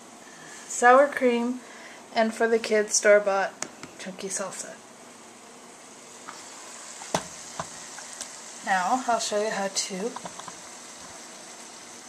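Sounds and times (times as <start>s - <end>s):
ground beef sizzling in a pot: 0.0s - 12.0s.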